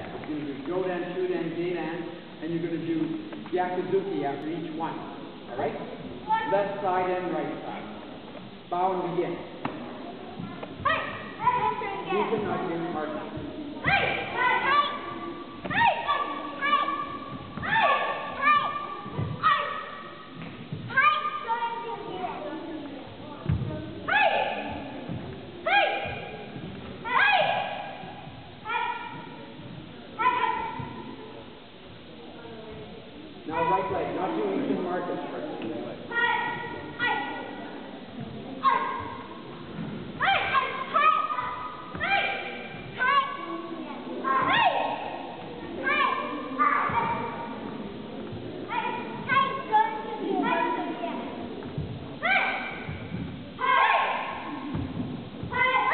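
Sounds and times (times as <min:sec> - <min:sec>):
children's high-pitched shouts: 0:10.8 - 0:12.2, 0:13.8 - 0:20.1, 0:20.9 - 0:22.2, 0:24.1 - 0:24.8, 0:25.6 - 0:26.4, 0:27.0 - 0:28.0, 0:28.6 - 0:29.4, 0:30.2 - 0:31.0, 0:38.6 - 0:39.3, 0:40.2 - 0:45.2, 0:45.8 - 0:47.4, 0:48.7 - 0:51.3, 0:52.2 - 0:52.9, 0:53.6 - 0:54.6, 0:55.5 - 0:55.9.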